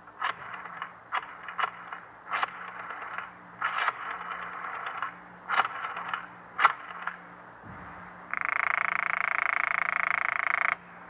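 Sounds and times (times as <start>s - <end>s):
buzzy telephone ring: 8.3s - 10.8s.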